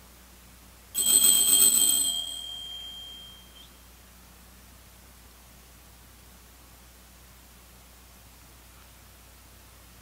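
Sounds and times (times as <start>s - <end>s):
altar bell ringing: 1.0s - 3.6s.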